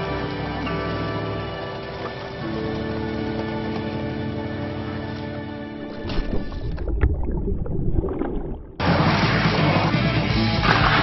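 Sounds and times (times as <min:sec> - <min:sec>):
low muffled rumbling: 0:05.8 - 0:08.8
loud rock music: 0:08.8 - 0:11.0.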